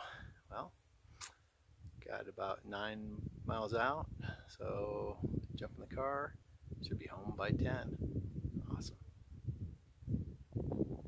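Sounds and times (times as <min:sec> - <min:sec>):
wind buffeting microphone: 0:01.7 - 0:11.0.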